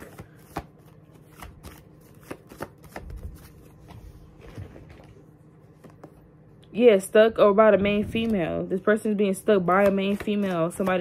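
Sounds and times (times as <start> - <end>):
cards being shuffled: 0.0 - 5.1, 9.6 - 11.0.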